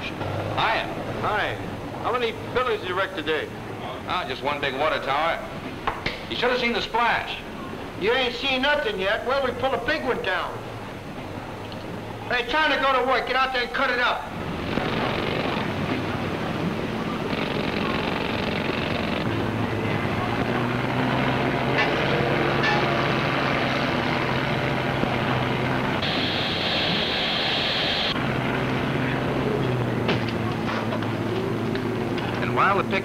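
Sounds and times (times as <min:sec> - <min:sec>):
demolition machinery engine: 0:00.0 - 0:04.1, 0:14.2 - 0:33.0
high hiss: 0:26.0 - 0:28.2.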